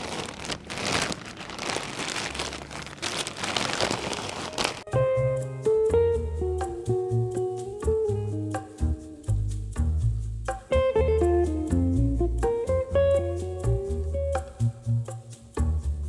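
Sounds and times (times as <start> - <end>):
plastic bag crinkling: 0.0 - 4.9
light music with bass and guitar: 4.6 - 16.0.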